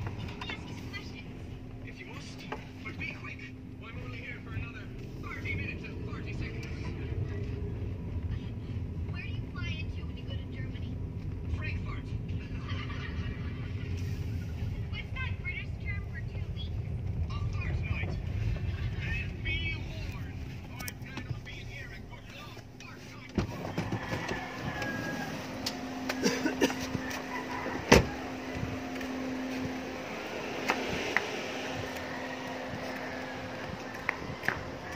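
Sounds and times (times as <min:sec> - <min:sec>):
car cabin rumble: 0:00.0 - 0:34.9
muffled voices: 0:00.0 - 0:34.9.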